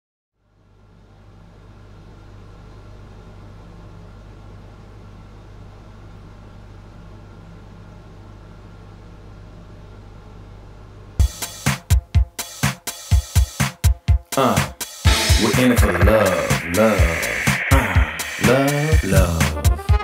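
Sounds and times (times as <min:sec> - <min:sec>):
steady low hum: 0:15.1 - 0:20.0.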